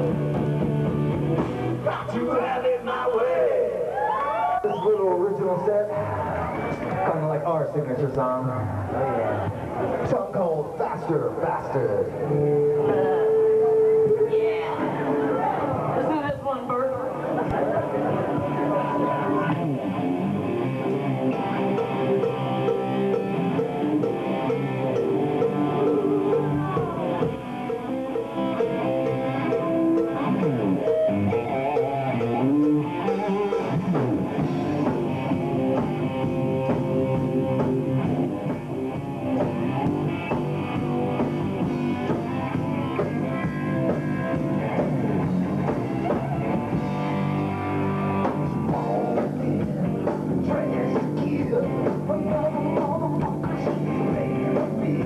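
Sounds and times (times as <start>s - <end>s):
drum kit: 0.0s - 2.6s, 17.4s - 55.0s
distorted electric guitar: 0.0s - 2.9s, 11.4s - 16.3s, 17.0s - 55.0s.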